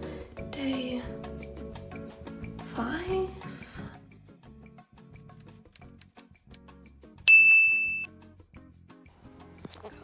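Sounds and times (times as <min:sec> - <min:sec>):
quiet background music: 0:00.0 - 0:10.0
bell-like ding: 0:07.3 - 0:08.1.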